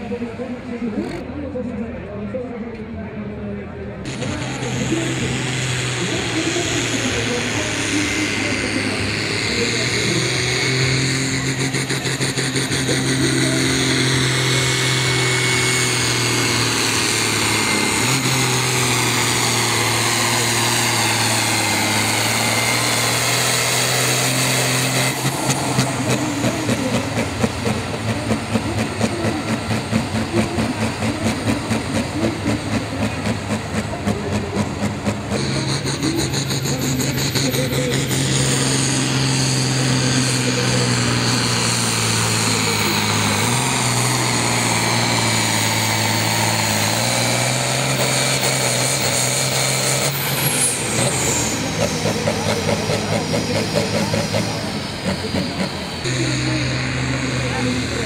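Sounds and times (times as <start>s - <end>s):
diesel engine running hard: 0.0s - 58.0s.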